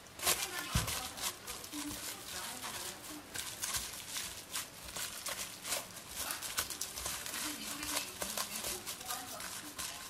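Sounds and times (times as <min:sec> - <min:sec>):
cling film crinkling: 0:00.0 - 0:10.0.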